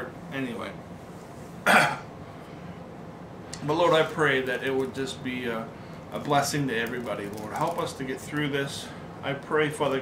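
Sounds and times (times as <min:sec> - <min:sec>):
man coughing: 0:01.6 - 0:02.1.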